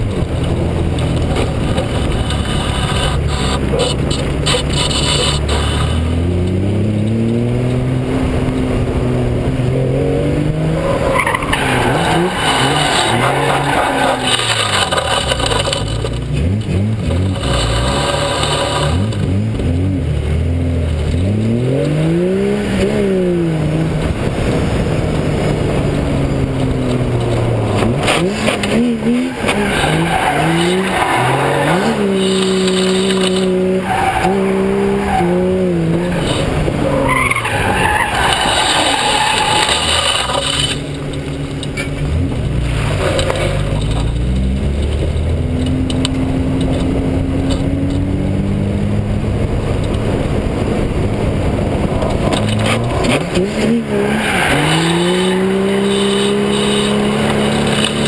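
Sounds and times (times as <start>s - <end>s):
car engine revving: 0.0s - 58.0s
tyres squealing: 10.7s - 15.9s, 27.3s - 40.9s, 52.5s - 58.0s.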